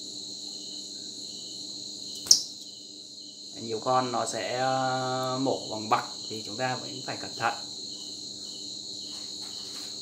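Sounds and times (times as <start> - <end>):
insects chirring: 0.0 - 10.0
sharp click: 2.1 - 2.7.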